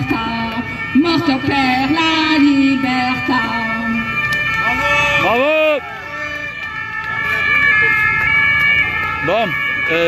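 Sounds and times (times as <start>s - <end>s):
faint crowd voices: 0.0s - 10.0s
siren steady high tones: 0.0s - 10.0s.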